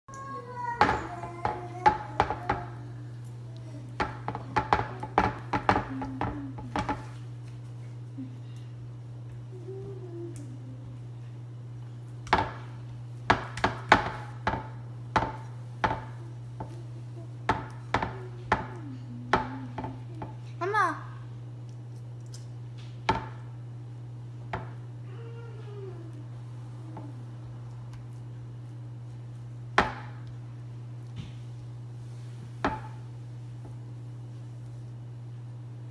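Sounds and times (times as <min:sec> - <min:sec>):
steady low hum: 0:00.0 - 0:35.9
fingers tapping dough in a pan: 0:00.8 - 0:02.8, 0:04.0 - 0:07.2, 0:12.2 - 0:16.8, 0:17.5 - 0:20.4, 0:23.1 - 0:23.5, 0:29.7 - 0:30.4.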